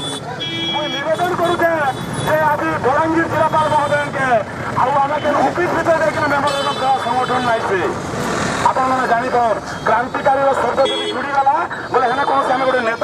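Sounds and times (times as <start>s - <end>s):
traffic noise: 0.0s - 13.0s.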